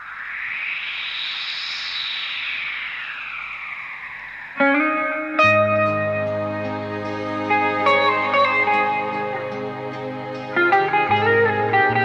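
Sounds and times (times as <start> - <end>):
synthesizer sweep: 0.0 - 12.0.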